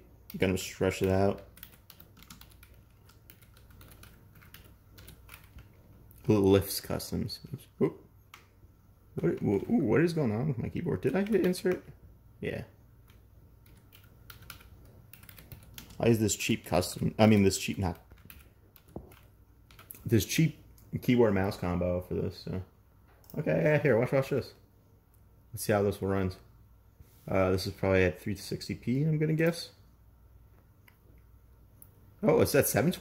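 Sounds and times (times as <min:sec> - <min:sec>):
computer keyboard typing: 0:00.3 - 0:06.5, 0:10.8 - 0:11.9, 0:13.0 - 0:20.1.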